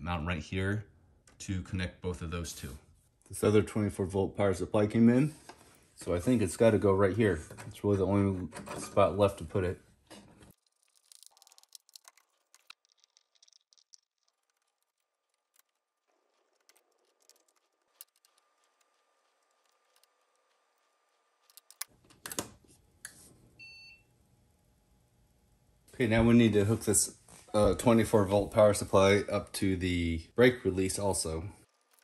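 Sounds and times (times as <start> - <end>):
rattling wires: 10.0 - 22.4, 31.0 - 32.0.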